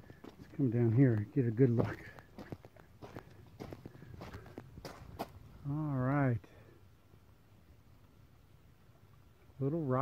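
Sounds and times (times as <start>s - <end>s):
footsteps and scuffs: 0.1s - 5.4s.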